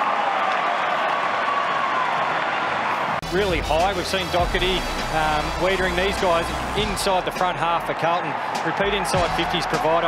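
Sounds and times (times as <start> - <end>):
stadium crowd cheering and clapping: 0.0 - 10.0.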